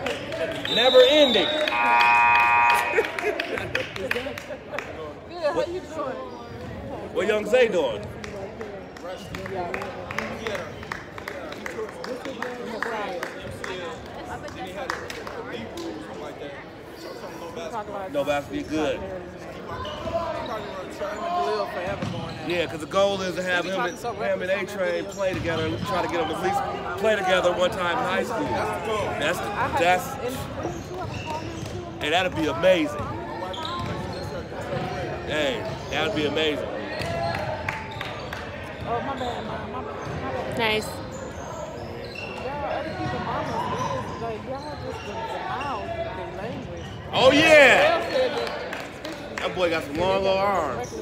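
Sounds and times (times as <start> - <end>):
voices in a gym: 0.0 - 51.0
sneaker squeaks on hardwood: 30.6 - 31.9, 33.0 - 35.1, 38.8 - 47.2.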